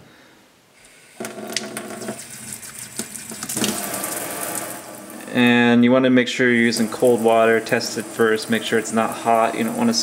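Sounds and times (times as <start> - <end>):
faucet spraying water into sink: 0.8 - 5.3, 6.4 - 10.0.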